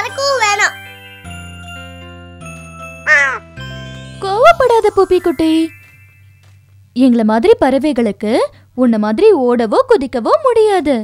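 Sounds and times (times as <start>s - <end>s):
background music of held notes: 0.0s - 6.9s
crow cawing: 3.1s - 3.4s
person speaking: 4.2s - 5.9s.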